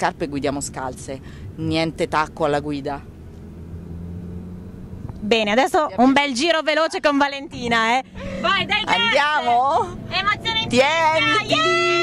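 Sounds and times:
car engine hum inside cabin: 0.0 - 12.0.

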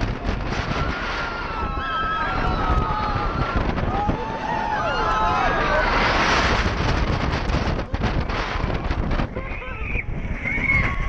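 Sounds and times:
gusty wind on microphone: 0.0 - 11.0
low rumble: 0.0 - 11.0.

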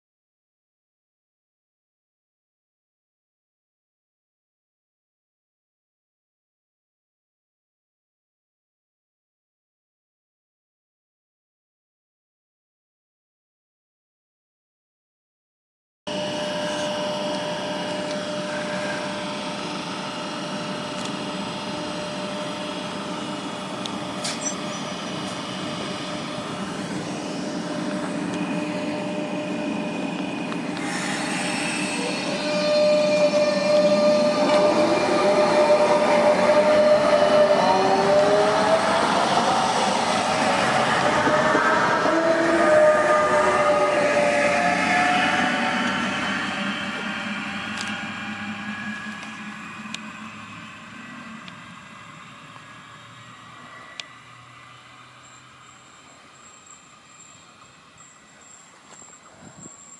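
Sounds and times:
electric train whine: 16.1 - 59.9.

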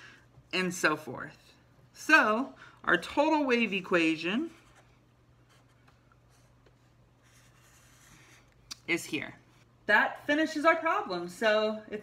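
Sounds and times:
marker drawing on paper: 4.4 - 8.6.

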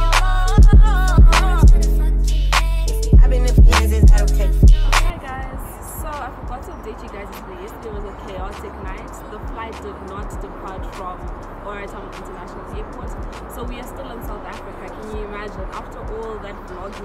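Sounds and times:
background music: 0.0 - 17.0
woman talking: 5.1 - 17.0.

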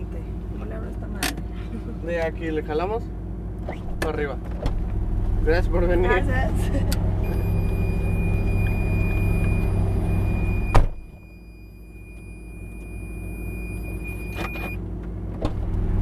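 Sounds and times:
car engine idling: 0.0 - 16.0
car door shutting: 7.3 - 11.2, 13.9 - 15.7.

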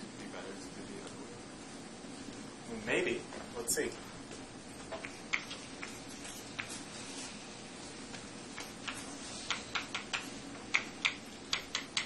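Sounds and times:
chalk tapping on blackboard: 4.9 - 7.3, 8.1 - 12.0.

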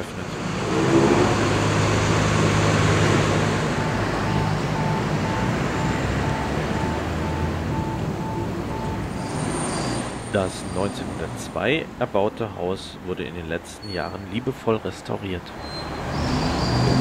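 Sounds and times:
vehicle engine running: 0.0 - 9.2
electronic beeping: 3.8 - 10.0.

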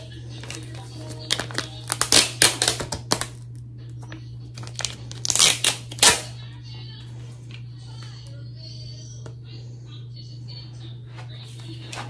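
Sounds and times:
foil sachet crinkling: 0.0 - 3.6, 4.5 - 6.2
steady low hum: 0.0 - 12.0.

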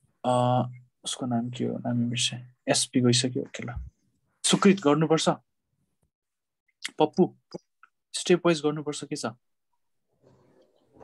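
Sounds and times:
man speaking: 0.2 - 5.5.

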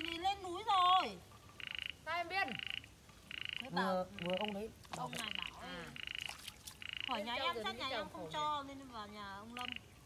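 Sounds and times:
frog calling with buzzy calls: 1.0 - 8.0, 9.4 - 10.0.

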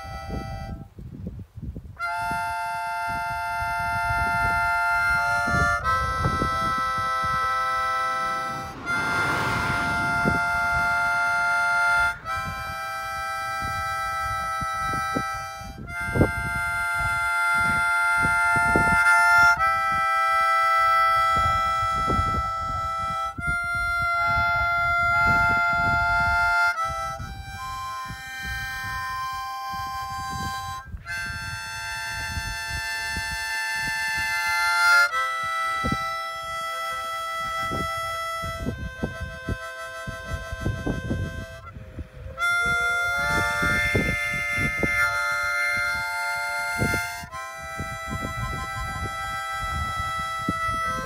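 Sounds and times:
harmonica holding a chord: 0.0 - 0.9, 2.0 - 51.0
low rumbling noise: 5.2 - 15.9
reed instrument chord: 5.4 - 14.5.

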